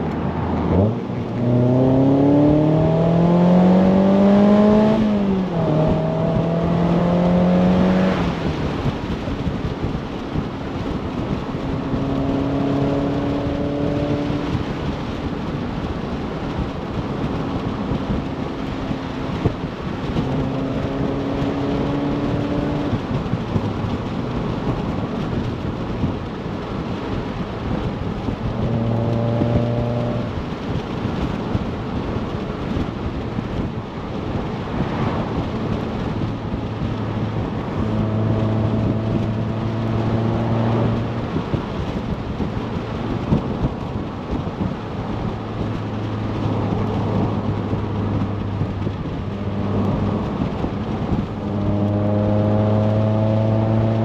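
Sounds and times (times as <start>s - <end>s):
car engine running: 0.0s - 54.0s
wind and road noise: 0.0s - 54.0s.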